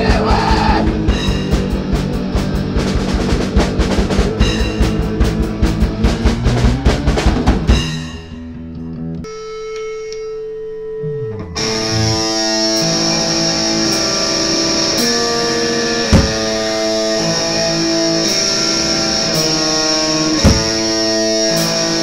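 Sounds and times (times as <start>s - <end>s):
drum fill: 0.0s - 8.6s, 20.4s - 20.9s
distorted electric guitar chords: 0.0s - 22.0s
low note sliding downward: 9.2s - 13.8s.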